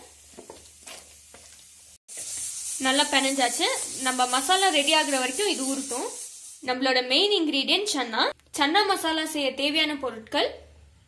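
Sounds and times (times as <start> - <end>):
steady high hiss: 2.1 - 7.1.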